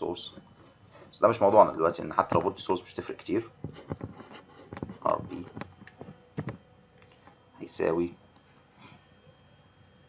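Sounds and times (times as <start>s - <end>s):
person speaking: 1.1s - 5.7s.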